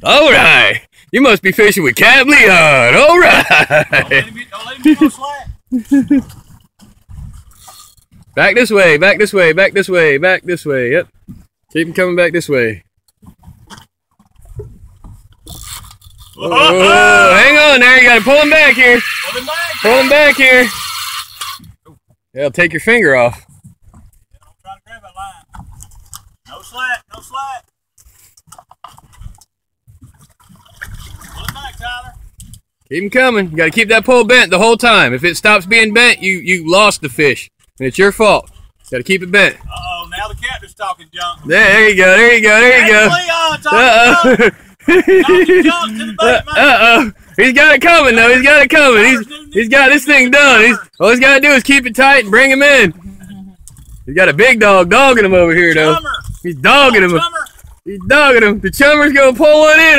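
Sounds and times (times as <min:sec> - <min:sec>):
men talking and chuckling: 0:02.8 - 0:06.4, 0:42.6 - 0:50.9
water sloshing against boat hull: 0:05.9 - 0:08.4, 0:13.0 - 0:16.4, 0:23.2 - 0:32.9, 0:45.4 - 0:54.2, 0:54.9 - 0:58.3.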